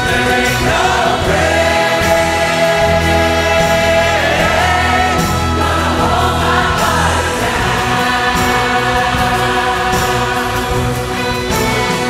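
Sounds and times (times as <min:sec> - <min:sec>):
choir singing: 0:00.0 - 0:12.0
orchestra and band accompaniment: 0:00.0 - 0:12.0.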